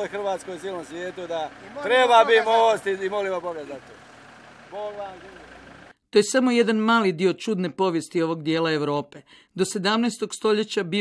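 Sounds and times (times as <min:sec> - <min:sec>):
vehicle engine idling: 0:00.0 - 0:06.0.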